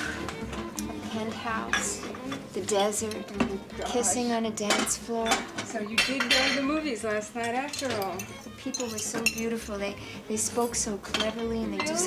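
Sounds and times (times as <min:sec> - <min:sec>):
dishes and cutlery clinking: 0:00.0 - 0:12.0.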